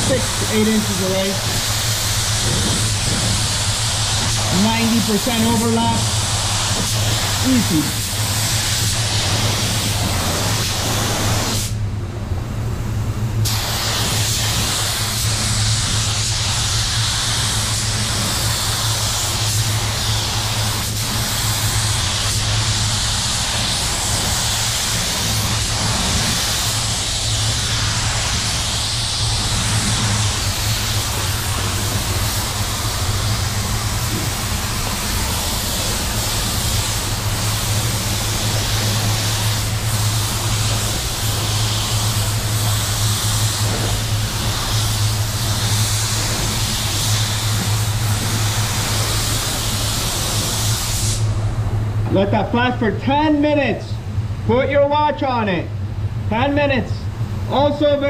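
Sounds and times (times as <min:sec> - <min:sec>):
spray gun hissing: 0:00.0 - 0:11.8, 0:13.4 - 0:51.4
steady low hum: 0:00.0 - 0:58.0.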